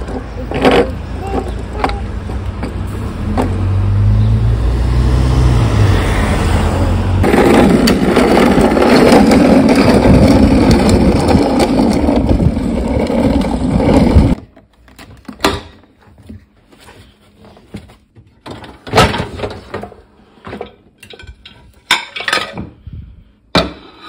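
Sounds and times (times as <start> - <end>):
plastic wheels rolling on asphalt: 0.0 - 3.8, 7.1 - 15.3.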